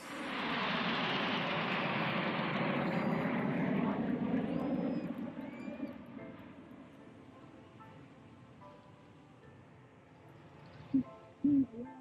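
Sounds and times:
jet aircraft flying past: 0.0s - 11.3s.

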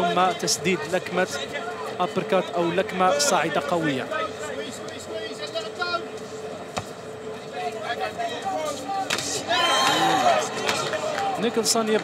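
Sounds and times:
audience voices and shouts: 7.1s - 12.0s.

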